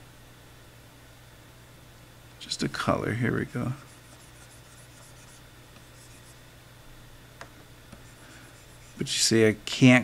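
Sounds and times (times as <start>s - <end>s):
stylus scratching on tablet: 3.4s - 6.4s, 8.0s - 9.3s.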